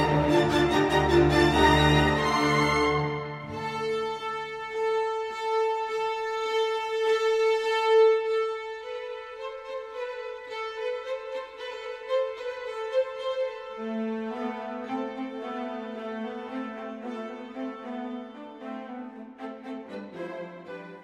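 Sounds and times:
slow violin music: 0.0s - 21.0s.

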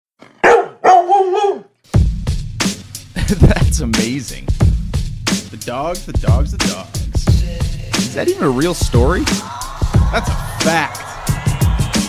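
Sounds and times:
dog barking: 0.4s - 1.7s.

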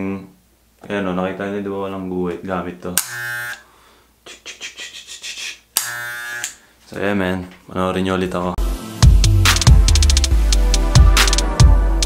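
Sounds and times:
electric hair clippers buzzing: 3.0s - 3.6s, 5.8s - 6.6s.

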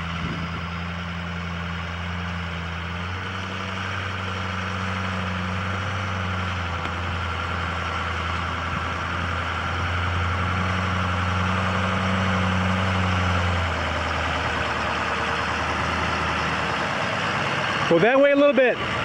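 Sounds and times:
truck engine running: 0.0s - 19.0s.

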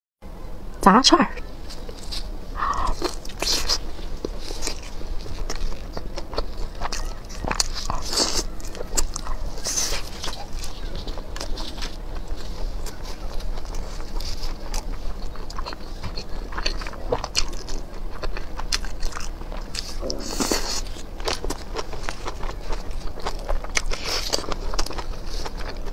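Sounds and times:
meat skewers clicking and crackling: 1.7s - 25.9s
person chewing food: 1.7s - 25.9s.

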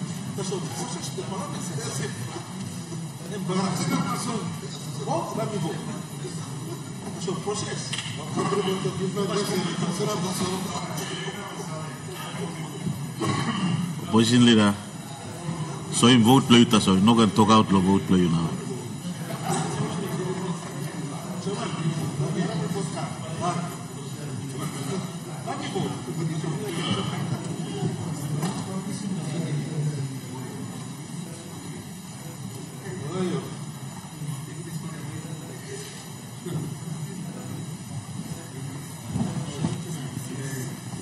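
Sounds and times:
murmur of many voices: 0.0s - 41.0s.

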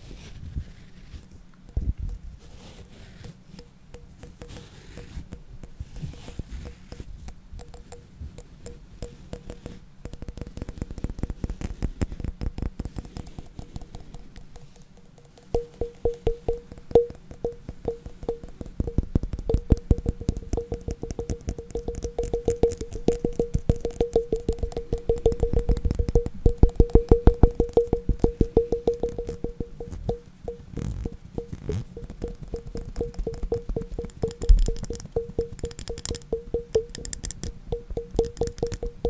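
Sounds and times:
fast tapping on hard objects: 3.9s - 39.0s.

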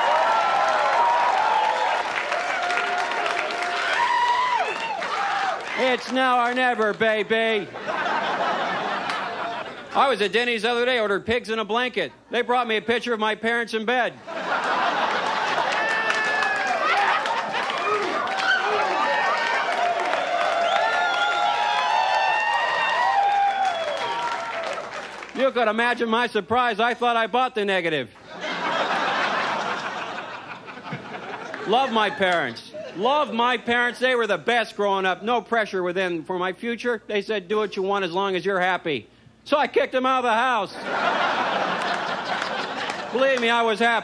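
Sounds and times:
audience cheering and shouting: 0.0s - 6.2s, 15.0s - 25.2s
audience clapping: 0.0s - 7.3s, 9.0s - 9.4s, 14.7s - 25.4s, 31.2s - 31.7s, 41.6s - 43.7s
audience laughing: 7.6s - 10.0s, 14.2s - 19.0s, 28.2s - 33.0s, 40.8s - 43.4s.

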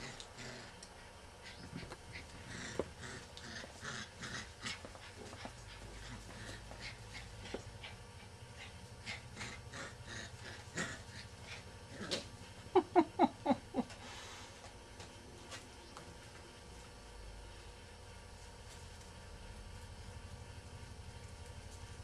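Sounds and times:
paws clicking on tiled floor: 1.6s - 9.2s.

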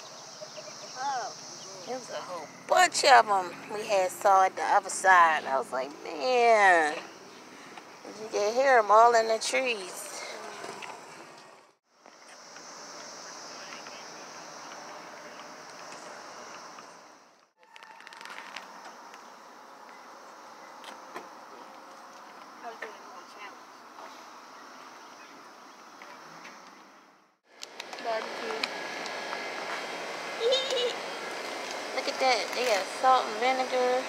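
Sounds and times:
cicadas buzzing: 0.0s - 11.3s, 11.9s - 34.0s.

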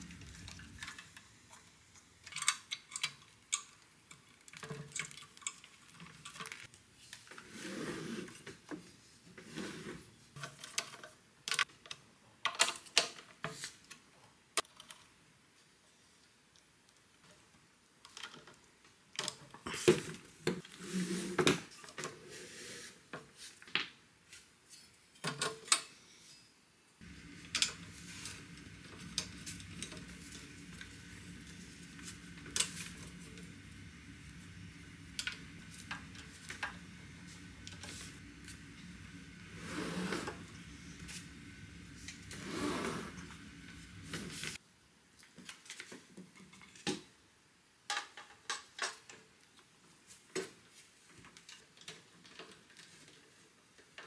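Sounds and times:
low steady hum: 26.9s - 44.6s.

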